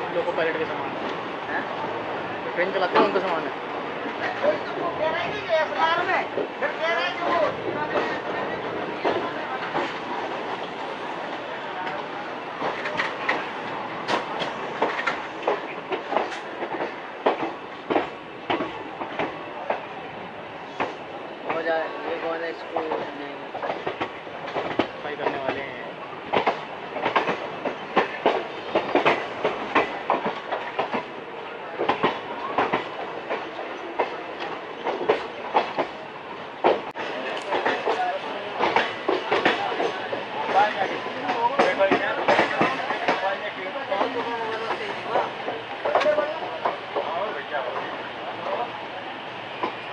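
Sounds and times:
train rolling rumble: 0.0s - 49.9s
wheels clacking over rail joints: 11.8s - 19.9s, 26.2s - 48.6s.

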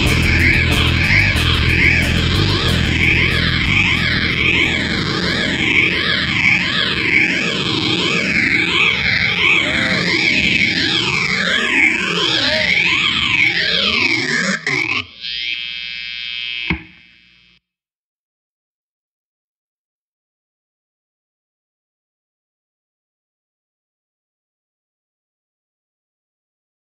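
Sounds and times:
steady hum: 0.0s - 7.7s
distorted electric guitar sweeping: 0.0s - 17.6s.

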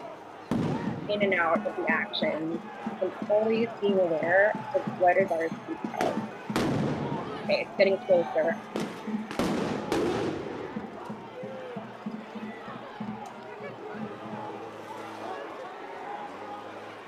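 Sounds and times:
crowd din: 0.0s - 17.0s
distant voices: 0.0s - 17.0s
sharp bangs with echo: 0.5s - 1.4s, 5.8s - 7.4s, 8.6s - 10.8s.

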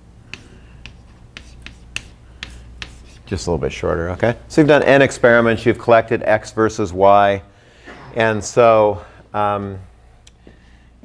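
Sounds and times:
chalk clicking on blackboard: 0.3s - 3.3s.

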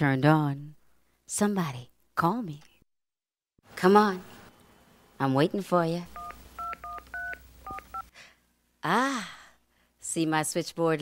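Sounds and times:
telephone keypad touch tones: 6.2s - 8.1s.

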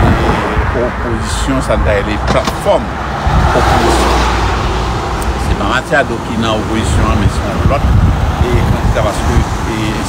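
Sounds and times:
low traffic rumble: 0.0s - 10.0s
car passing close by: 2.8s - 8.4s.

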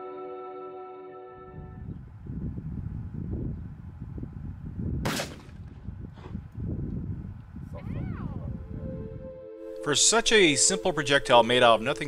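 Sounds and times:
wind buffeting microphone: 1.4s - 9.4s
shotgun shot: 5.0s - 5.8s.

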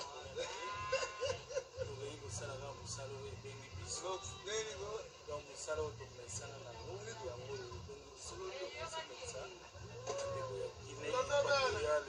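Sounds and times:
person laughing: 0.4s - 2.0s.

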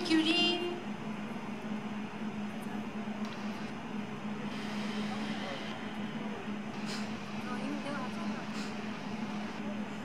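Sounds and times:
steady low hum: 0.0s - 10.0s
faint voices: 2.3s - 10.0s.

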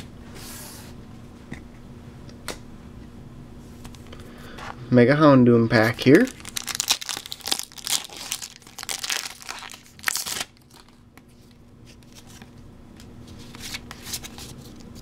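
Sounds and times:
foil wrapper crinkling and tearing: 5.8s - 11.0s
cards rustling: 5.8s - 12.5s, 13.3s - 15.0s.

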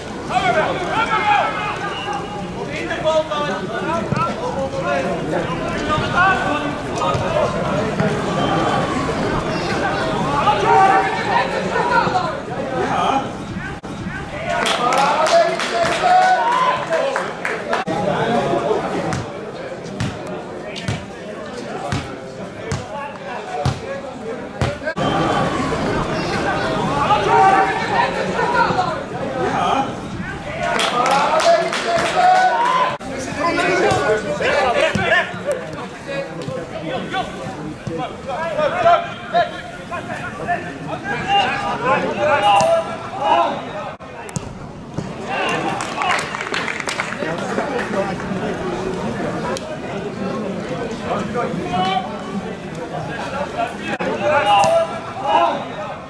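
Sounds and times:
faint voices of players: 0.0s - 56.0s.

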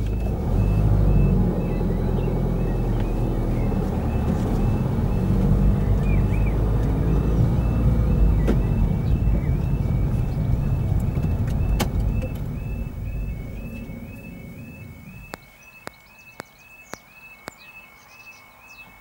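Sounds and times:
car engine and road noise: 0.0s - 19.0s
warbling two-tone crossing alarm: 0.4s - 15.4s.

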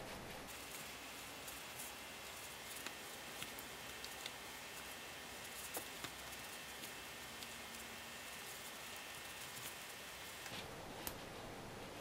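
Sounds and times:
soft yarn rustling: 0.0s - 12.0s
steady low hiss: 0.0s - 12.0s.

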